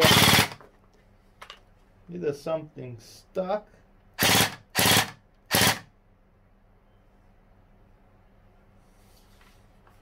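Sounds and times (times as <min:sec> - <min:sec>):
toy blaster full-auto bursts: 0:00.0 - 0:00.6, 0:04.2 - 0:05.9.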